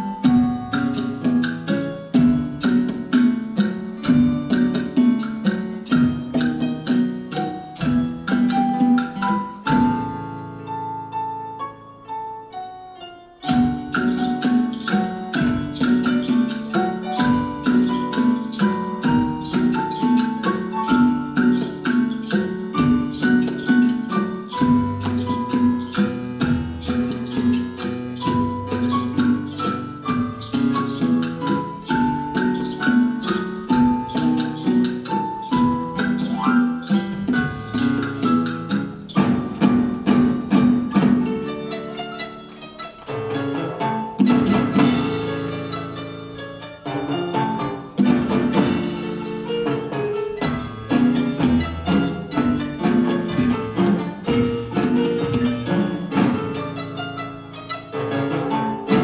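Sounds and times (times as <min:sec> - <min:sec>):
marimba ensemble playing: 0:00.0 - 0:59.0
percussion: 0:00.0 - 0:59.0.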